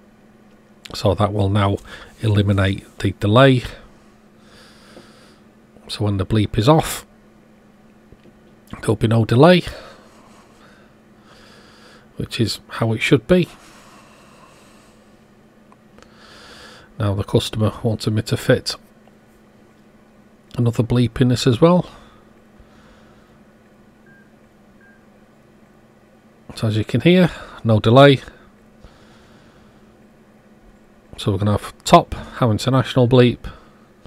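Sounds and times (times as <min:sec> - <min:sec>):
low steady hum: 0:00.0 - 0:34.0
faint electronic beeps: 0:24.0 - 0:25.1.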